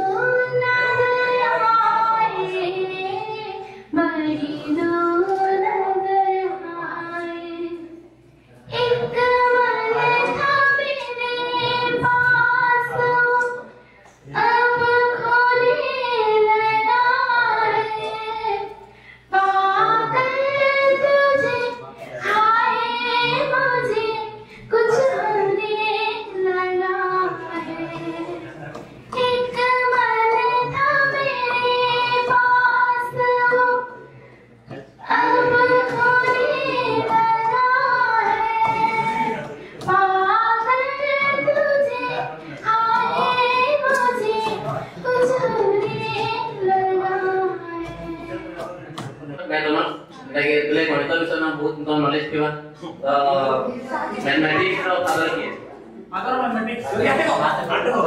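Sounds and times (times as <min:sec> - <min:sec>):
woman singing into microphone: 0:00.0 - 0:08.0, 0:08.7 - 0:13.7, 0:14.3 - 0:18.7, 0:19.3 - 0:34.1, 0:35.0 - 0:48.7.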